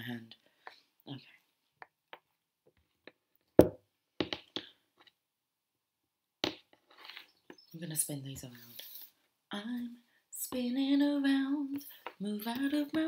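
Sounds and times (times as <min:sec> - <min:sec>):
cards handled on a tabletop: 0:06.4 - 0:07.6.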